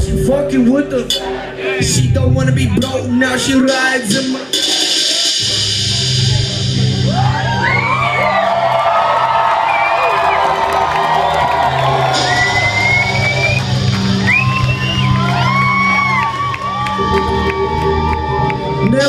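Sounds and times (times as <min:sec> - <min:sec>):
bass-heavy hip-hop beat: 0:00.0 - 0:19.0
crowd whooping and shouting: 0:06.2 - 0:19.0.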